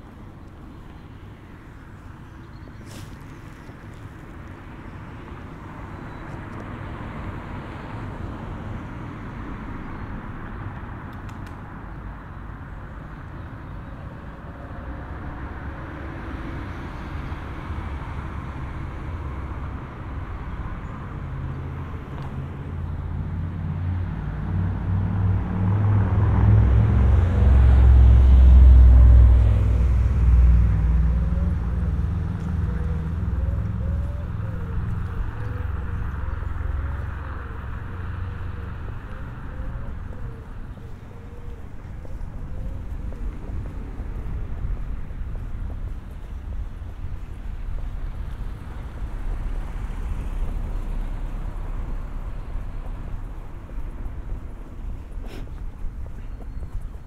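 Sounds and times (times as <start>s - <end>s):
vehicle passing close: 21.2s - 57.0s.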